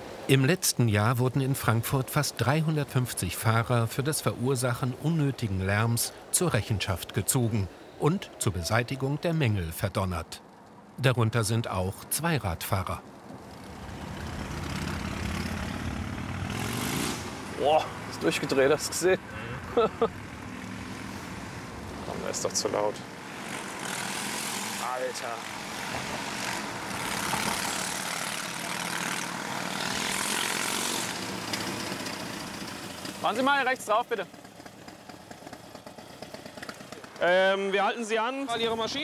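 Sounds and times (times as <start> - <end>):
car road noise: 1.0 - 39.0
motorcycle engine revving: 13.4 - 37.6.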